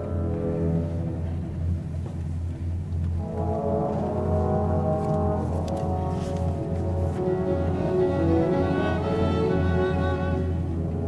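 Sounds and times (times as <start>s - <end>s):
orchestral music: 0.0s - 11.0s.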